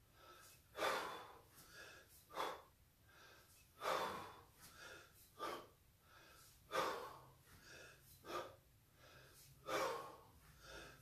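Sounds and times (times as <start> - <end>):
man breathing hard: 0.0 - 11.0.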